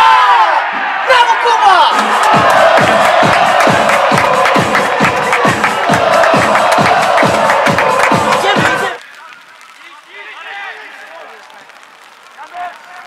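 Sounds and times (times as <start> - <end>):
crowd cheering: 0.0 - 13.0
electronic dance music: 1.2 - 9.0
fast kick drum beat: 2.0 - 9.0.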